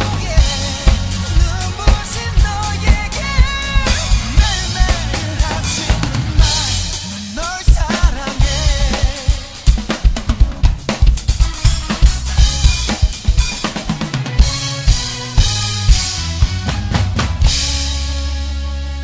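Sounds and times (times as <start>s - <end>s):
acoustic drum kit: 0.0s - 19.0s
backing music: 0.0s - 19.0s.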